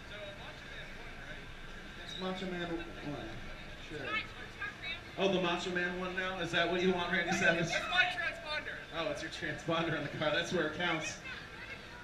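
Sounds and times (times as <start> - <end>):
distant voices murmuring: 0.0 - 12.0
low outdoor background noise: 0.0 - 12.0.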